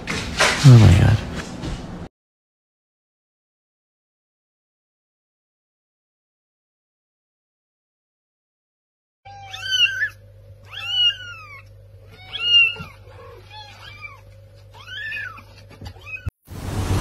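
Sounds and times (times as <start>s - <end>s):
kitten meowing: 9.3s - 16.3s.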